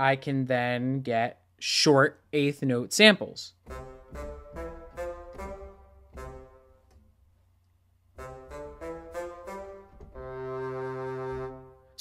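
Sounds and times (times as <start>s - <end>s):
bassoon notes: 3.6s - 7.0s, 8.1s - 12.0s.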